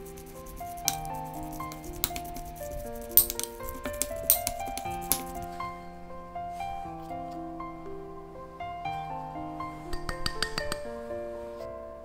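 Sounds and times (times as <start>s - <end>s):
background music with sustained notes: 0.0s - 12.0s.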